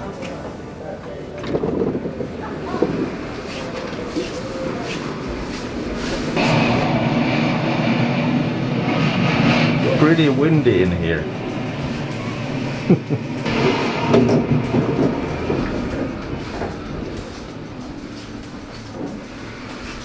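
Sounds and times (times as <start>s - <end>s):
faint voices: 0.0s - 6.8s
fan blowing hard: 0.0s - 20.0s
scattered knocks: 8.9s - 20.0s.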